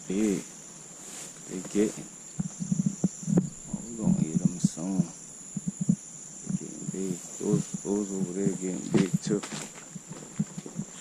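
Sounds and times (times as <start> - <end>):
high-pitched insect drone: 0.0 - 11.0
man's low vocal sounds: 2.6 - 9.5.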